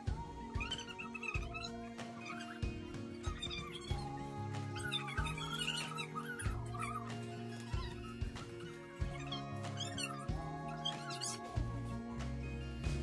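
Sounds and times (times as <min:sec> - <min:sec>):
sustained chords over bass: 0:11.6 - 0:13.0.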